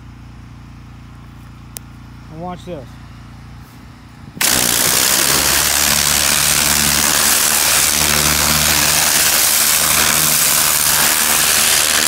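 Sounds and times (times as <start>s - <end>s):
small engine idling: 4.4s - 12.0s.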